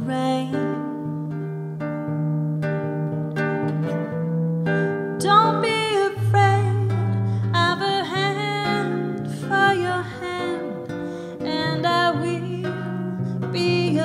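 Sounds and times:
guitar plucking chords: 0.0s - 14.0s.

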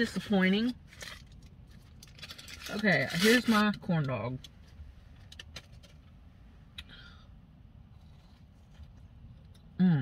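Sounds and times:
car interior hum: 0.0s - 10.0s
paper wrapper rustle: 0.8s - 3.6s.

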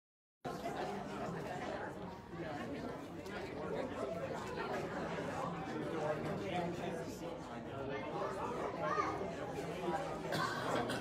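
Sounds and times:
crowd chatter in a hall: 0.4s - 11.0s.

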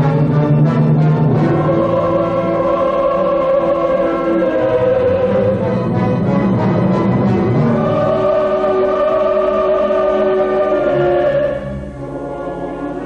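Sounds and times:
opera chorus singing held chords: 0.0s - 13.0s.

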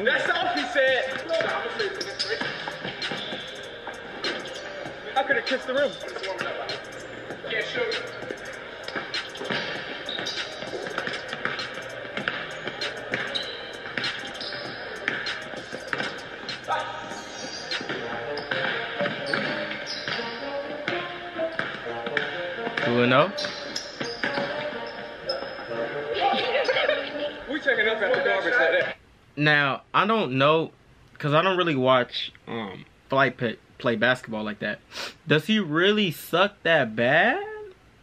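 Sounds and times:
background music: 0.0s - 28.9s.

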